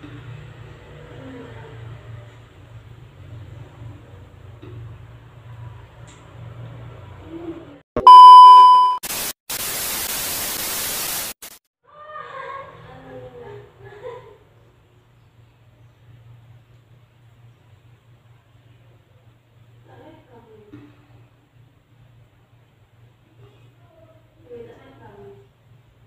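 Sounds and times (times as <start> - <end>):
loud electronic beep: 8.0 - 9.0
white-noise static: 8.0 - 11.6.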